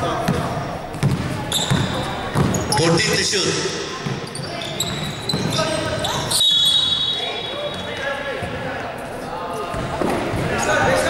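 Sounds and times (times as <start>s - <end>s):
voices calling in a gym: 0.0s - 11.0s
basketball bouncing: 0.2s - 2.7s
high whistle blast: 6.3s - 7.6s.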